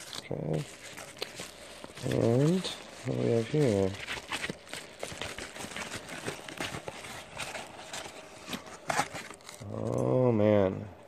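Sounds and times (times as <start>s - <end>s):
padded envelope rustling: 0.0s - 9.8s.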